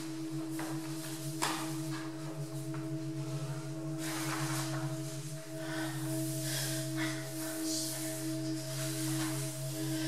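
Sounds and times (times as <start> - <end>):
low tone drone: 0.0 - 10.0.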